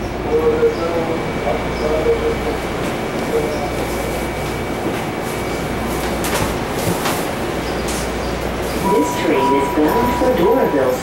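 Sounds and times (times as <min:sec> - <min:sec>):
faint passenger voices: 0:00.0 - 0:11.0
rail car interior hum: 0:00.0 - 0:11.0.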